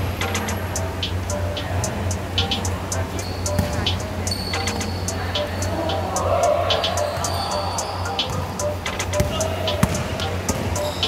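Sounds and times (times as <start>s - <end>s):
background music: 0.0s - 11.0s
sneakers squeaking: 0.0s - 11.0s
basketball bouncing on court: 3.5s - 4.9s, 9.2s - 10.8s.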